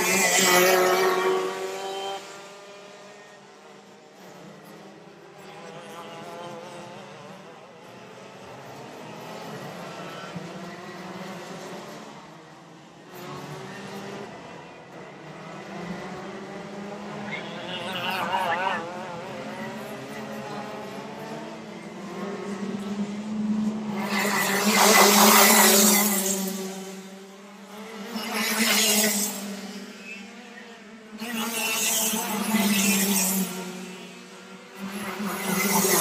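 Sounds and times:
racing kart engines buzzing: 0.0 - 36.0.

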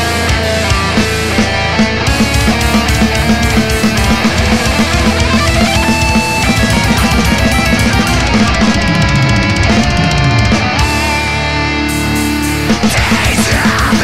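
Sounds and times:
distorted electric guitars: 0.0 - 14.0
heavy metal song: 0.0 - 14.0
rapid bass drum strokes: 0.0 - 14.0.

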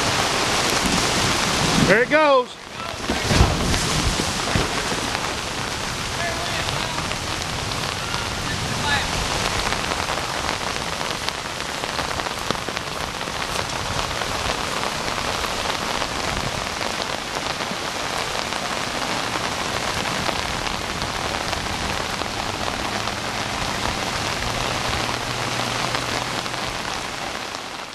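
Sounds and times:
floodwater rushing: 0.0 - 27.9.

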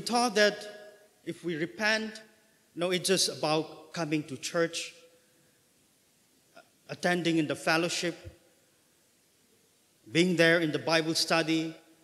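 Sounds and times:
man speaking: 0.0 - 5.1, 6.6 - 8.4, 10.1 - 11.9.

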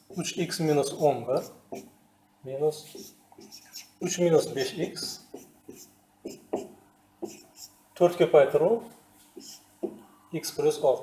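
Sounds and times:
marker writing on whiteboard: 0.0 - 1.9, 2.9 - 4.2, 5.0 - 7.8, 9.3 - 10.1.

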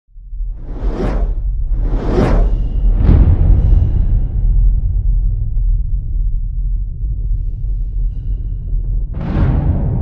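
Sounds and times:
deep rumble: 0.1 - 10.0
cinematic whoosh: 0.4 - 5.8.

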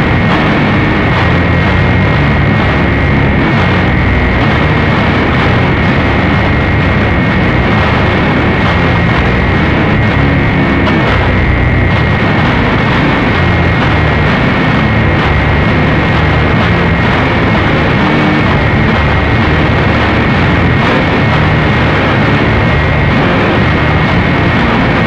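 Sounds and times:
distorted noise music: 0.0 - 25.0.

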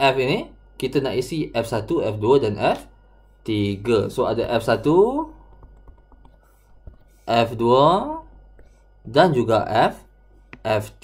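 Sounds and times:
stylus tapping tablet screen: 3.8 - 7.2.

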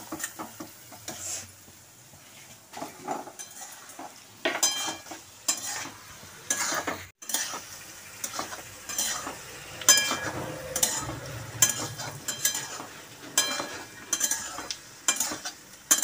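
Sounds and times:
metal spatula scraping pan: 0.0 - 1.6, 2.2 - 16.0
frying sizzle: 0.0 - 16.0.

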